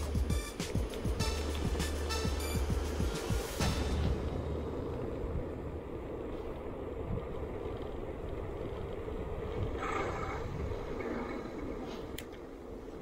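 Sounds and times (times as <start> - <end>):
bicycle tyre and road noise: 0.0 - 13.0
wind rushing on microphone: 4.0 - 13.0.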